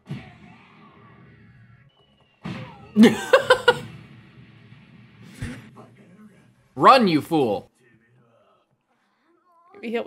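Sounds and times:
faint anime soundtrack: 0.0 - 10.0.

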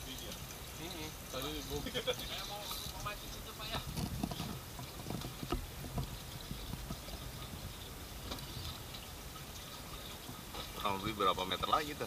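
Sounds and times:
water slapping against boat hull: 2.5 - 9.0.

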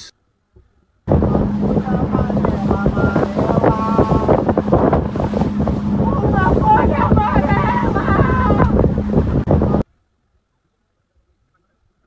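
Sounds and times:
boat engine running: 1.0 - 9.8
wind noise on microphone: 1.1 - 9.9.

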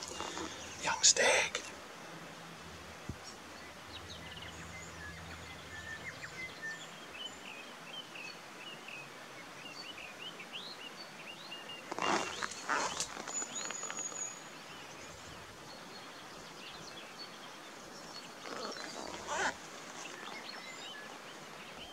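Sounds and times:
small birds chirping: 0.0 - 2.1, 3.1 - 9.0, 9.6 - 21.9
loud rustle: 11.9 - 14.3.

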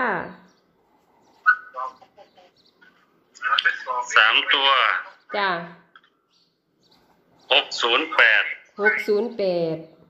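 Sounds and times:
brief pitched calls: 1.4 - 3.0
person speaking: 3.4 - 5.5, 7.5 - 9.4.

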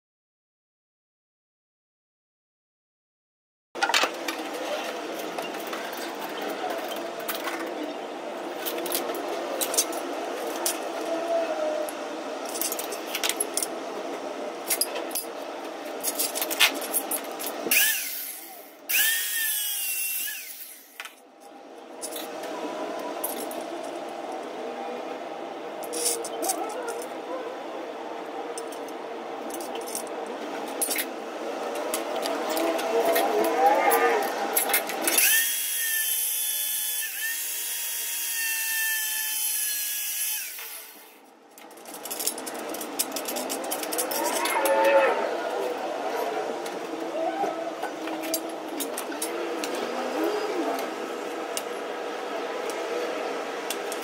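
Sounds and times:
power drill whine: 17.7 - 21.0, 35.1 - 41.2.

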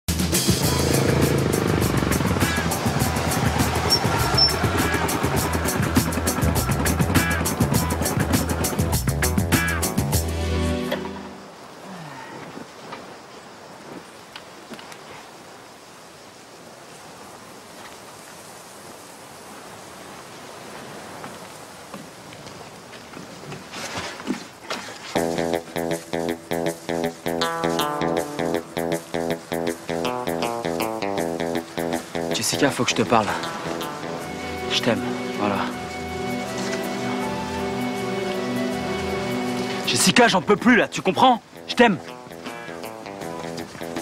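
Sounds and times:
dirt bike engine running: 0.1 - 9.9, 25.2 - 32.4
background music with steady beat: 0.1 - 11.4, 25.2 - 40.2, 41.4 - 44.0
outdoor ambience hiss: 7.2 - 44.0.

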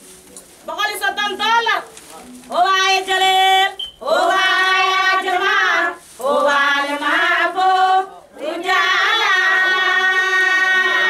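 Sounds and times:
high-pitched voices singing: 2.9 - 11.0.

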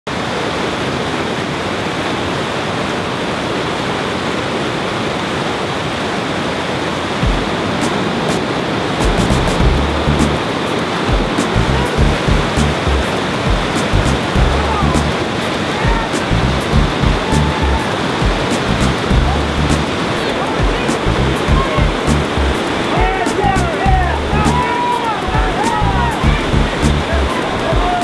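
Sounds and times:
river rapids rushing over boulders: 0.1 - 28.0
deep music beat thumps: 7.2 - 8.0, 9.0 - 10.4, 11.1 - 20.0, 20.6 - 28.0.

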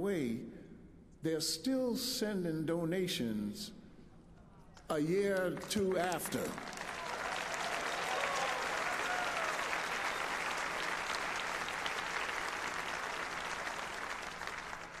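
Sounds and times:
large audience applauding: 5.3 - 15.0.

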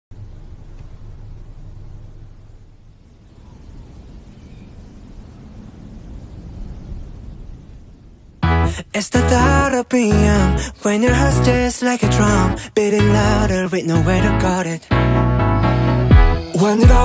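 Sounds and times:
low steady rumble: 0.1 - 14.5.

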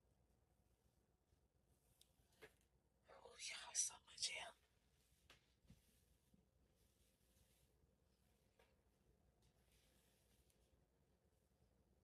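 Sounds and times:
woman whispering: 3.0 - 4.6.

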